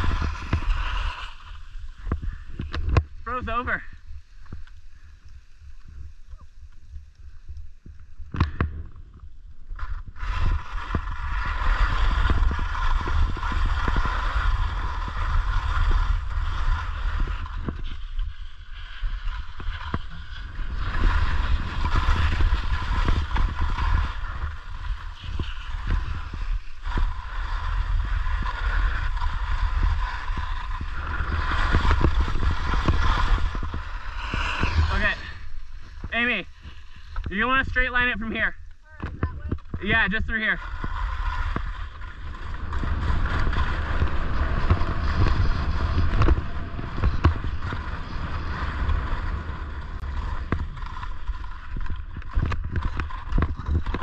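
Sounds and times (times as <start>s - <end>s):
skis scraping over snow: 0.0s - 54.0s
wind buffeting microphone: 0.0s - 54.0s.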